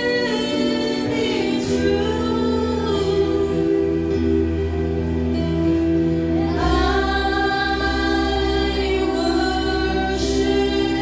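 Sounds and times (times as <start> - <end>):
choir singing held notes: 0.0 - 11.0
steady low bass: 0.0 - 11.0.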